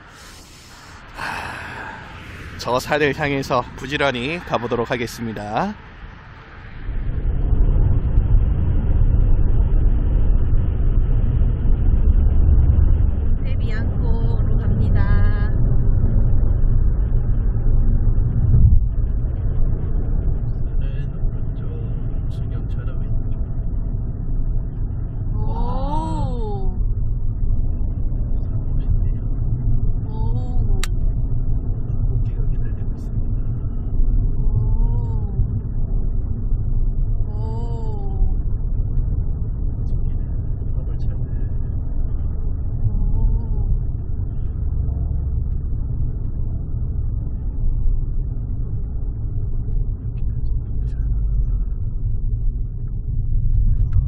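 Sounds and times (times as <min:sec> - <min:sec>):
road and engine rumble inside car: 0:00.0 - 0:54.0.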